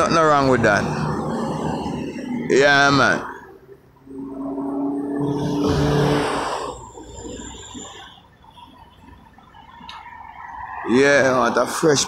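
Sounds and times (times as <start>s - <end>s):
quieter traffic: 0.0s - 12.0s
steady traffic hum: 0.0s - 12.0s
vehicle passing by: 4.1s - 7.5s.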